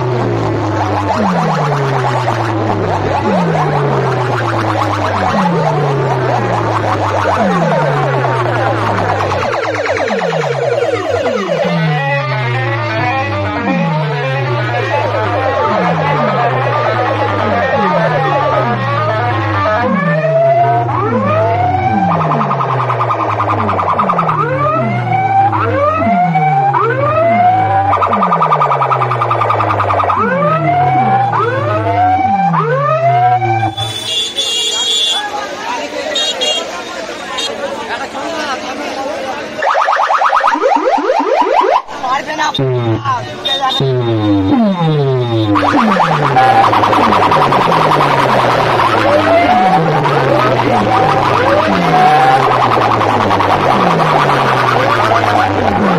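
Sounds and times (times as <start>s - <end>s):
loud dance music bass drop: 0.0s - 33.8s, 40.4s - 55.9s
swooping siren-like tones: 0.0s - 36.1s, 38.2s - 55.9s.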